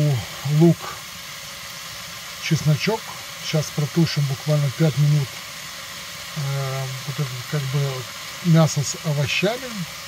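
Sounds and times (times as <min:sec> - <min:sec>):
man speaking: 0:00.0 - 0:01.0, 0:02.4 - 0:05.3, 0:06.4 - 0:09.9
food frying in a pot: 0:00.0 - 0:10.0.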